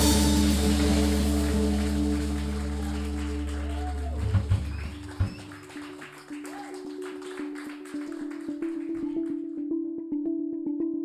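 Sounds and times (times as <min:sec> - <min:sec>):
jazz fusion band chord: 0:00.0 - 0:04.2
strong bass note: 0:00.0 - 0:04.7.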